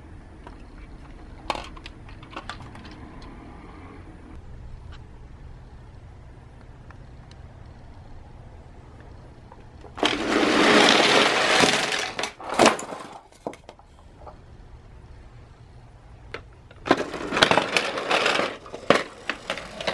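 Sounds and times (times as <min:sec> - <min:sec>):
toy cars clacking together: 0:00.4 - 0:03.4, 0:09.8 - 0:13.8, 0:16.3 - 0:19.9
toy car wheels rushing on board: 0:10.0 - 0:12.8, 0:16.8 - 0:19.9.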